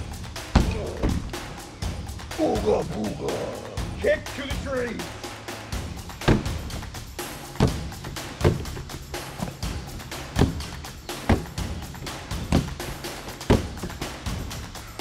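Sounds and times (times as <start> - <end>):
background music: 0.0 - 15.0
thuds on punching bag: 6.2 - 6.8, 7.6 - 8.8, 10.4 - 11.6, 12.4 - 12.8, 13.5 - 14.0.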